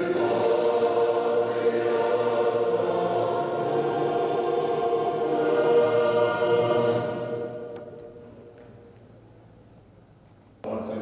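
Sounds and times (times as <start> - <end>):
choir singing anthem: 0.0 - 8.8.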